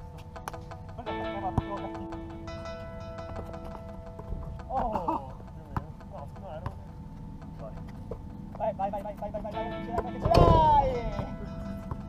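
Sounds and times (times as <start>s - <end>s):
faint background music: 0.0s - 12.0s
basketball bouncing on court: 5.4s - 8.6s, 10.0s - 12.0s
person shouting: 10.3s - 11.2s.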